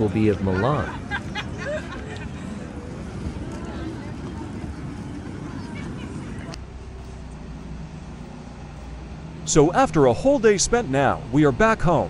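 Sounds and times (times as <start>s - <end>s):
crowd murmur: 0.0s - 9.5s
low hum of indoor car park: 0.0s - 12.0s.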